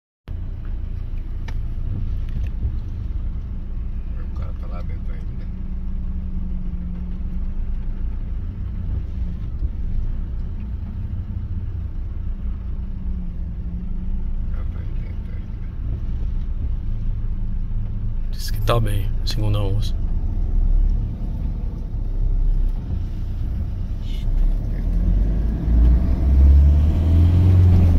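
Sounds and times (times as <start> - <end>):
vehicle engine idling: 0.3 - 27.9.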